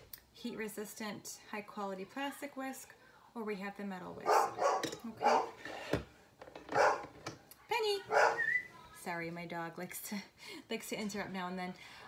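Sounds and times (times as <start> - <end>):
dog barking: 4.2 - 5.6, 6.8 - 7.1, 8.1 - 8.6.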